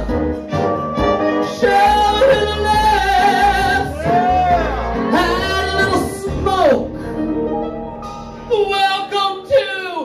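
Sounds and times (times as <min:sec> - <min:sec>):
backing track: 0:00.0 - 0:09.9
person singing into microphone: 0:01.4 - 0:06.6.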